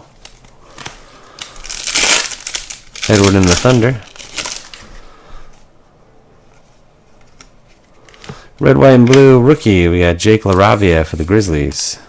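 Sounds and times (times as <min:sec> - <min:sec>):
foil wrapper crinkling: 0:00.2 - 0:04.9.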